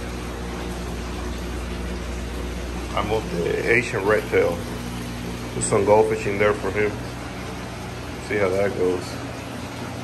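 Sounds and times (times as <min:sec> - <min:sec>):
aquarium pumps humming: 0:00.0 - 0:10.0
water running and splashing: 0:00.0 - 0:10.0.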